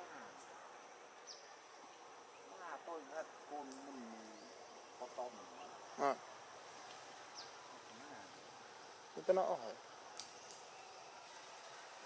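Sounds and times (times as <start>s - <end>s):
insects buzzing: 0.0s - 12.0s.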